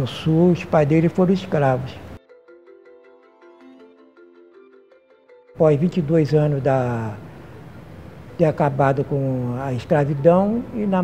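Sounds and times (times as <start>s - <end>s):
slow melody of ringing notes: 2.2s - 5.6s.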